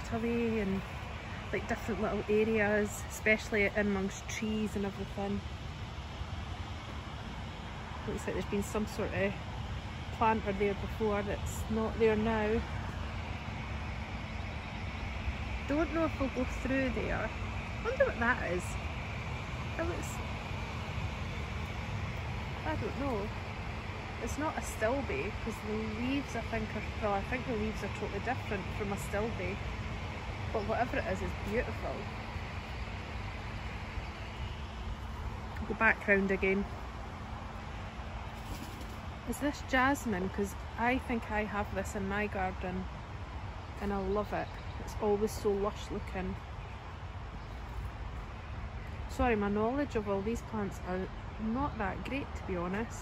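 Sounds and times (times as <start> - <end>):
faint steady hum: 0.0 - 53.0
low outdoor rumble: 0.0 - 53.0.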